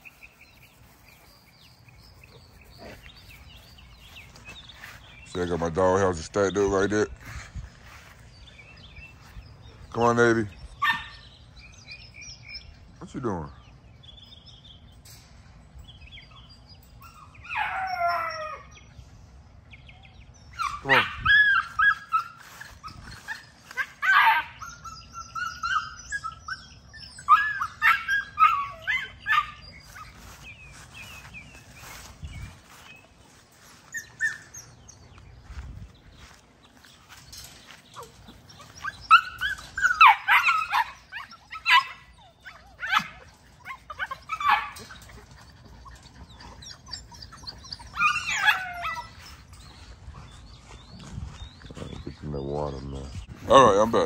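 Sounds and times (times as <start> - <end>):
puppies yipping and barking: 10.6 - 12.9, 14.1 - 19.0, 19.8 - 54.0.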